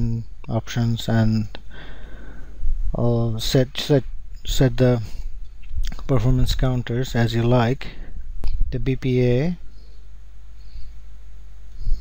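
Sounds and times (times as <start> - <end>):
low hum with faint hiss: 0.0 - 12.0.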